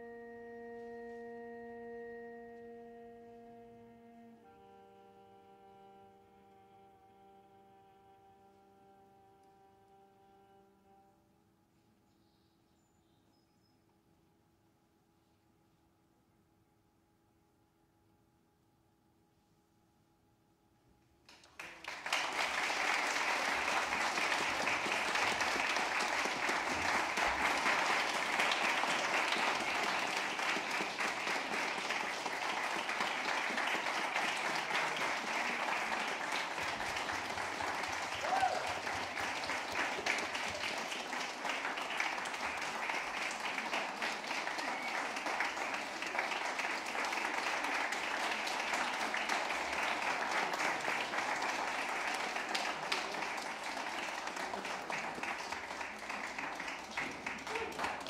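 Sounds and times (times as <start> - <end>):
audience applause: 21.3 - 58.0.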